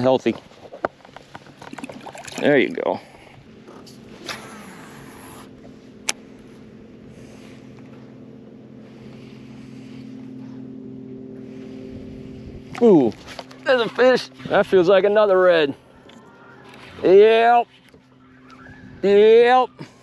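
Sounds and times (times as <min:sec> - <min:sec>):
trolling motor humming: 0:00.0 - 0:20.0.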